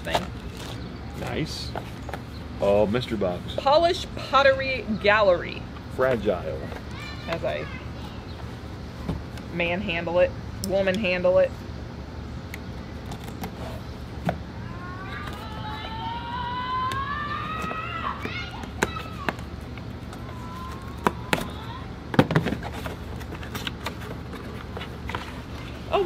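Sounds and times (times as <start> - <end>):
cardboard rustling: 17.5 - 26.0.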